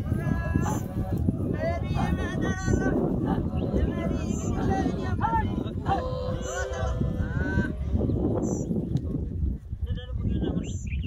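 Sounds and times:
men singing guttural grunts: 0.0 - 8.3
higher voices calling: 0.0 - 8.9.

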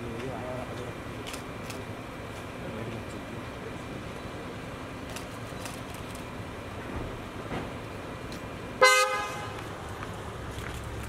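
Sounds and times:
street and vehicle noise: 0.0 - 11.0
car horn toot: 8.8 - 9.6.

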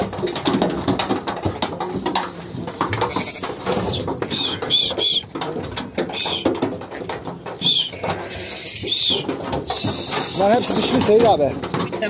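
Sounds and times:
sheep hooves on wooden boards: 0.0 - 12.0.

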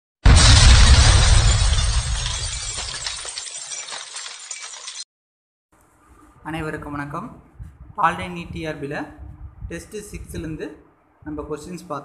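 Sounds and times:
crash with deep boom: 0.2 - 4.0.

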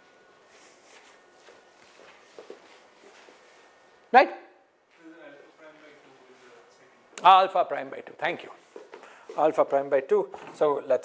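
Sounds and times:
footsteps on floor: 0.5 - 3.8, 8.6 - 9.5.

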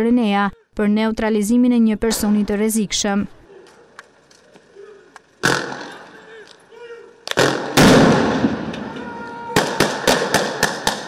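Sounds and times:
sharp gunshots: 5.4 - 6.2, 7.3 - 8.8, 9.6 - 11.0
stun grenade blast: 5.4 - 6.2, 7.3 - 8.9.

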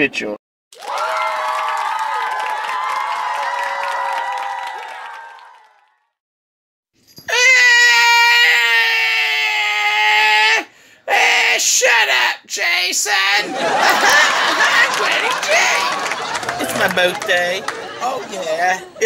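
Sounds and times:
man screaming: 7.3 - 13.4.

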